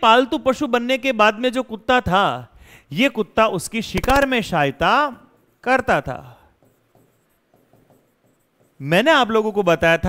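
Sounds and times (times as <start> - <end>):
man talking: 0.0 - 6.5, 8.8 - 10.0
marker pen writing on whiteboard: 3.9 - 9.9.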